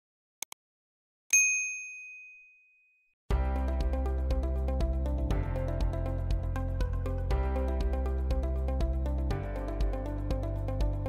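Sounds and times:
notification bell ding: 1.4 - 2.6.

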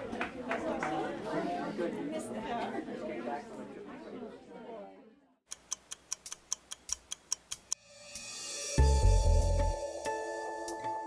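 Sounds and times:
clock-like ticking: 5.5 - 7.8.

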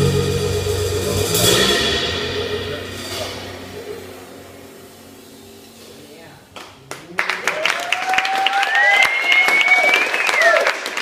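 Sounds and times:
audience applauding: 6.6 - 11.0
person whooping cheer: 7.4 - 10.9.

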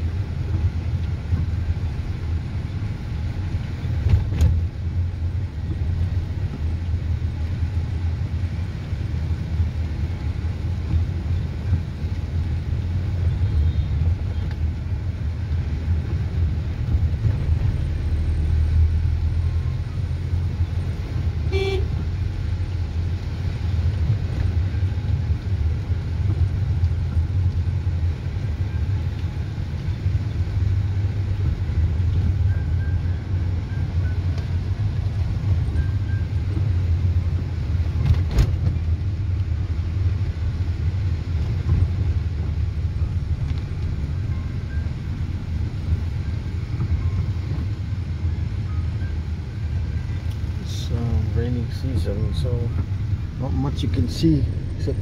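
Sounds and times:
car engine and tyres rumbling: 0.0 - 55.0
car horn toot: 21.5 - 22.0.

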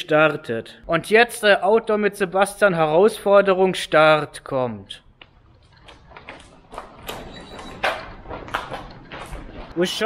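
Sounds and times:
footsteps on pavement: 5.2 - 10.0
shopping trolley rattling: 5.6 - 10.0.

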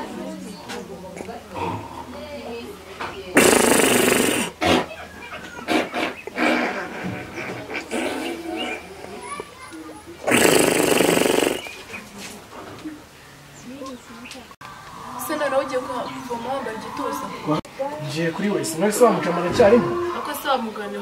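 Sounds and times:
voices: 0.0 - 21.0.

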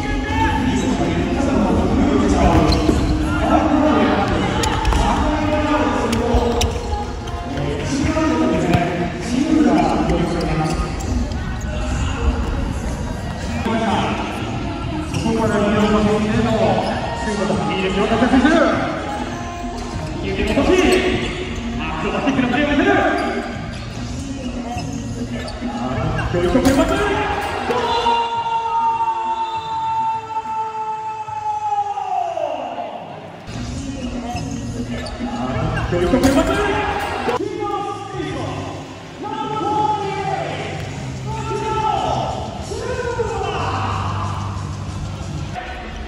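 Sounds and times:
players' voices: 0.0 - 46.0.

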